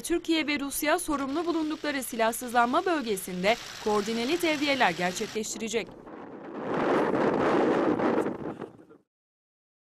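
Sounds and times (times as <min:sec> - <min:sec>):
wind rushing over microphone: 0:05.7 - 0:09.0.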